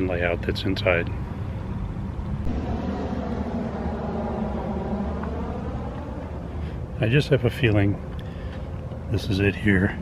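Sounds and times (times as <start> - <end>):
low engine rumble with hum: 0.0 - 10.0.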